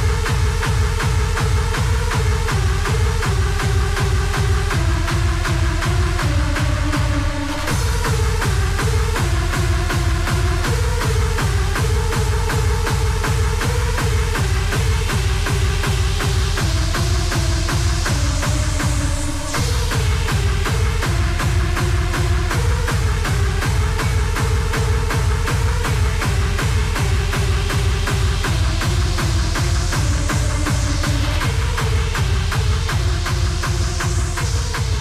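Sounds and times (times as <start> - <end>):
fast kick drum: 0.0 - 35.0.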